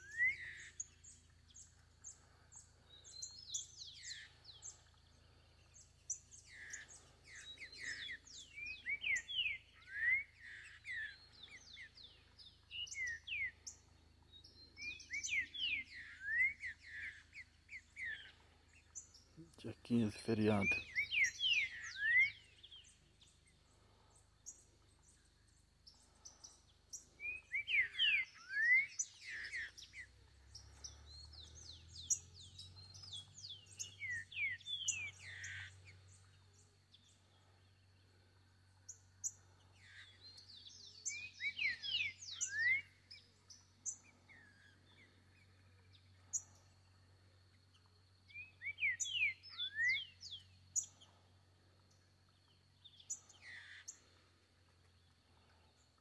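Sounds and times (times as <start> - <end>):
bird singing whistled phrases: 0.0 - 0.8, 20.6 - 22.5, 40.5 - 43.0, 48.3 - 50.4.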